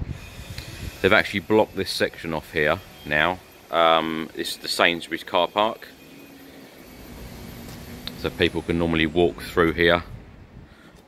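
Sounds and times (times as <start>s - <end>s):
distant engines rumbling: 0.0s - 10.7s.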